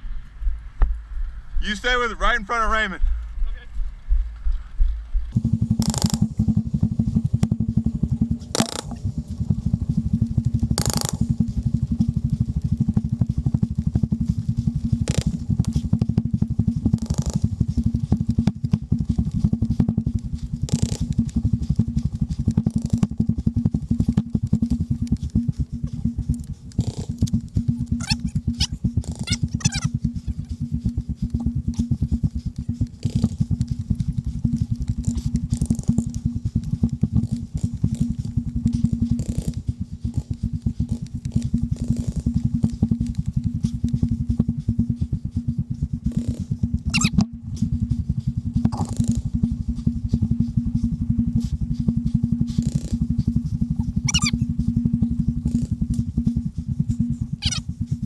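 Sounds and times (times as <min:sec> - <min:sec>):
wind rumble: 0:00.0 - 0:58.0
high squeaks: 0:27.9 - 0:30.0, 0:46.9 - 0:47.2, 0:54.0 - 0:54.4, 0:57.4 - 0:57.6.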